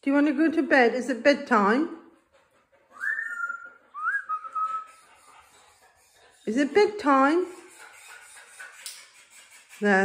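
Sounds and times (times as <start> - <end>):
parrot whistling: 3.0 - 4.9.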